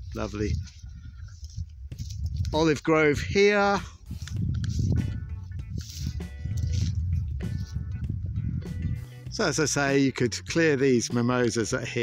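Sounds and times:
background music with held notes: 3.2s - 12.0s.

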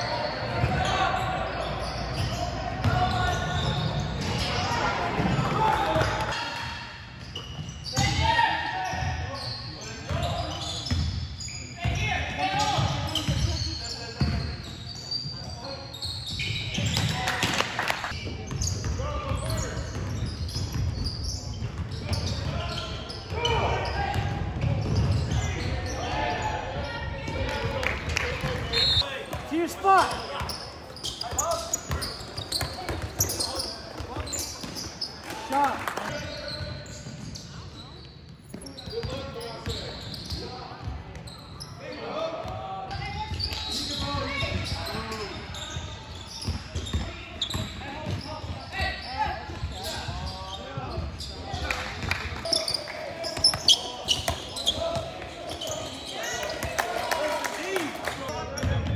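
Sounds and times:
basketball bouncing on court: 10.1s - 11.2s, 18.4s - 22.7s, 23.3s - 25.4s, 28.4s - 35.0s.

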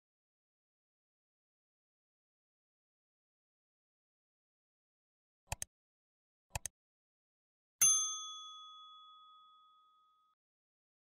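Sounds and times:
notification bell ding: 7.8s - 9.9s.

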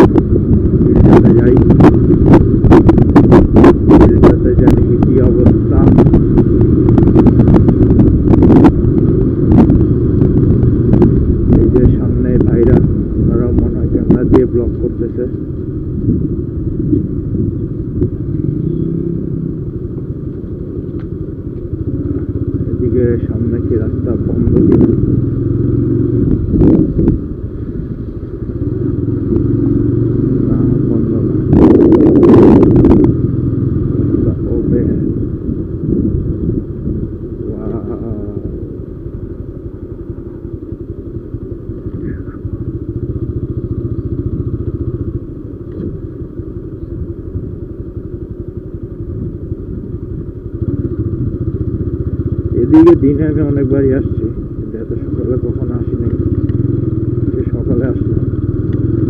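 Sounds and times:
loud rush of noise: 0.0s - 14.6s, 15.4s - 39.8s
motorcycle engine running: 0.0s - 59.0s.

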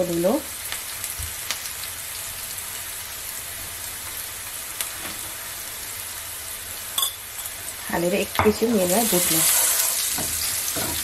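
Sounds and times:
onions sizzling in hot oil: 0.0s - 11.0s.

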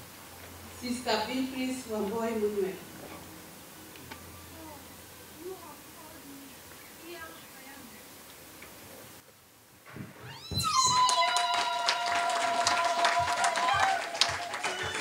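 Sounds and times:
faint murmuring: 4.0s - 9.2s
congregation ululating: 10.3s - 15.0s
people clapping: 10.8s - 15.0s.

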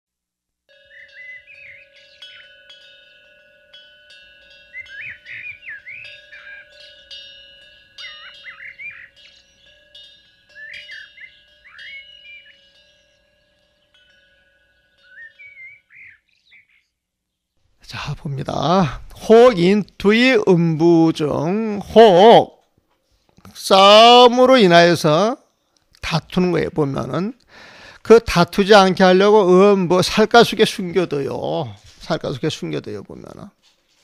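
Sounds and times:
steady held ringing tones: 0.7s - 17.7s
birds chirping: 0.7s - 22.5s.

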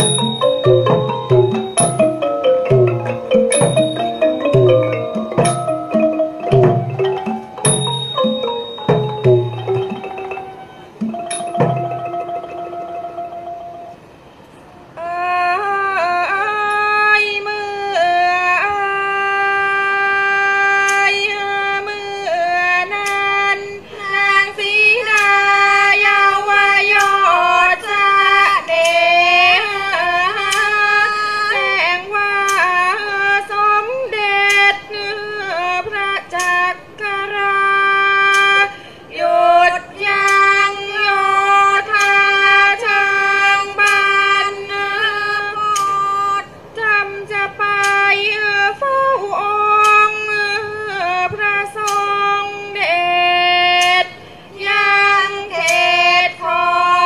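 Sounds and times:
woman singing: 15.0s - 57.0s.

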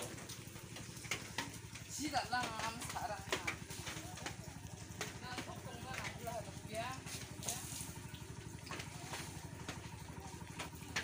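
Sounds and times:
bare feet splashing in muddy water: 0.0s - 11.0s.

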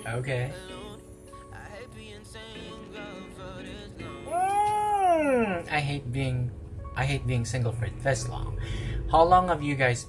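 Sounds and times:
song playing softly: 0.0s - 10.0s
man's long sliding vocal: 3.8s - 5.7s.

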